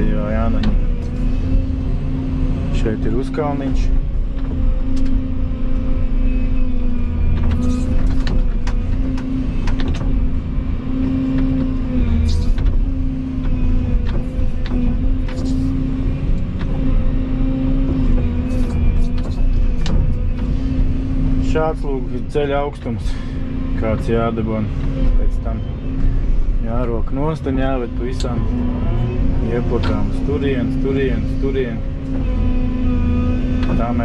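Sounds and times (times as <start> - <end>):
excavator diesel engine running: 0.0 - 34.0.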